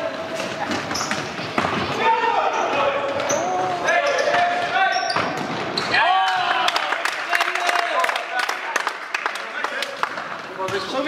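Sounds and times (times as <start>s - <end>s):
players shouting calls: 1.9s - 8.8s.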